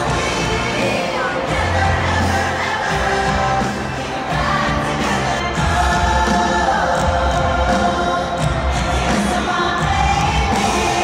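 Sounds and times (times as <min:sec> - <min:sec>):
live pop music with singing: 0:00.0 - 0:11.0.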